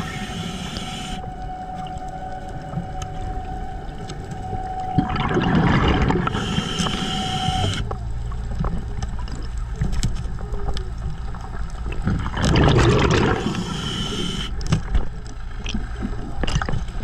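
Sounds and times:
boat engine hum underwater: 0.0s - 17.0s
rushing bubbling water: 4.9s - 7.2s, 11.2s - 14.4s.

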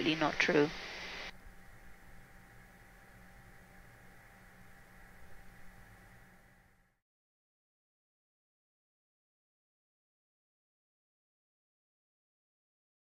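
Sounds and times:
loud hiss: 0.0s - 1.4s
jet cockpit hum and hiss: 0.0s - 7.0s.

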